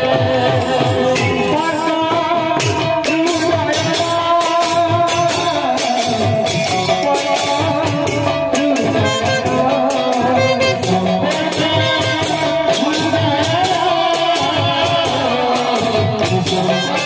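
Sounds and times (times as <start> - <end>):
barrel drum beat: 0.0 - 17.0.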